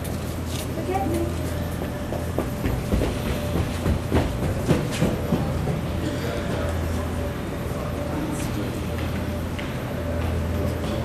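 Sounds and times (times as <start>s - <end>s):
crowd rumble: 1.2s - 11.0s
thumps and knocks echoing: 1.8s - 6.0s.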